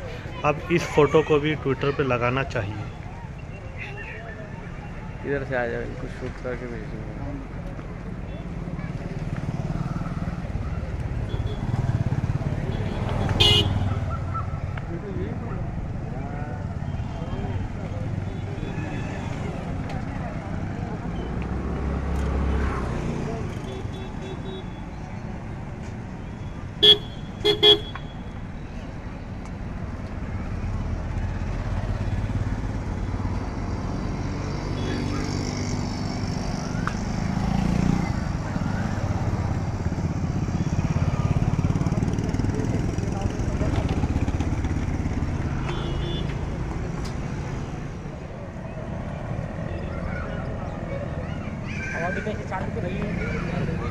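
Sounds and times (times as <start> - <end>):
motorcycles passing: 0.0 - 53.9
road traffic: 0.0 - 53.9
vehicle horn toots: 13.3 - 13.9, 26.8 - 28.2, 45.6 - 46.4.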